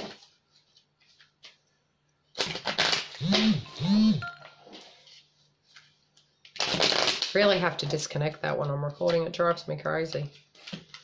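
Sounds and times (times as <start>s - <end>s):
electronic alert tones: 3.6s - 4.7s.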